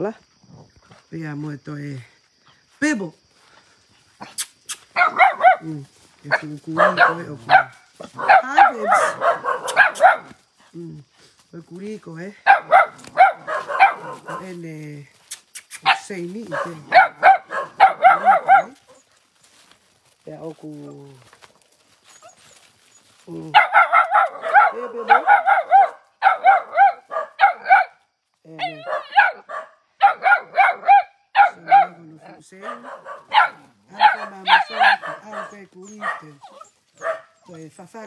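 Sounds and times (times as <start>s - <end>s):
dogs barking and yipping: 4.2s - 10.4s, 12.4s - 14.6s, 15.4s - 19.7s, 21.5s - 37.6s
dogs growling: 6.4s - 10.3s, 12.6s - 14.5s, 23.5s - 27.7s, 31.4s - 37.4s.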